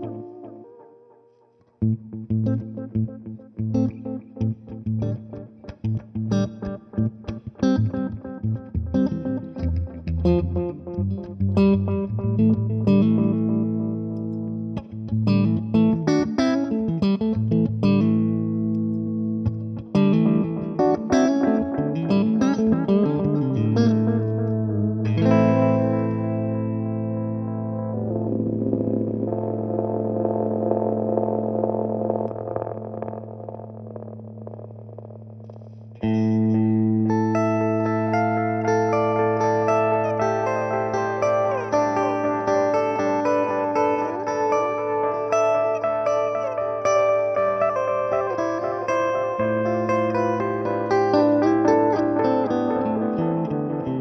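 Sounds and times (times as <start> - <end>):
electric guitar with delay repeats: 0.0 - 1.0, 1.8 - 54.0.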